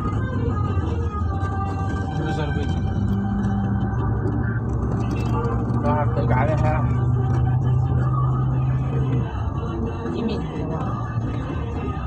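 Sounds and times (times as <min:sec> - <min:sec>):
car engine drone: 0:00.0 - 0:12.0.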